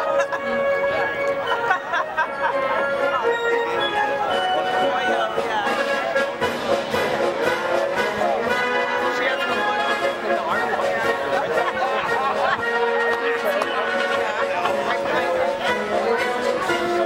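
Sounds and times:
brass band playing a march: 0:00.0 - 0:17.0
people talking: 0:00.0 - 0:17.0.

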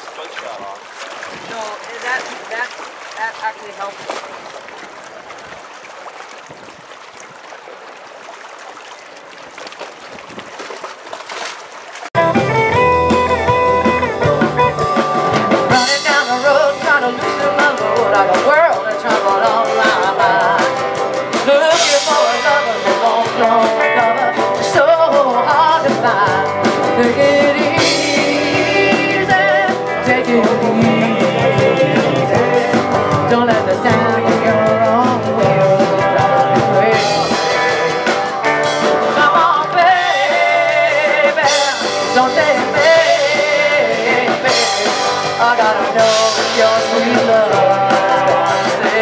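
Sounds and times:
faint wind: 0:00.0 - 0:12.1
water noise: 0:00.0 - 0:49.0
drum kit: 0:12.2 - 0:49.0
electric guitar: 0:12.2 - 0:49.0
person singing: 0:14.1 - 0:49.0.

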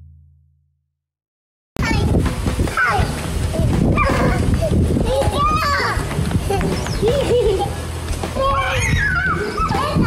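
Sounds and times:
children calling and squealing: 0:01.8 - 0:10.0.

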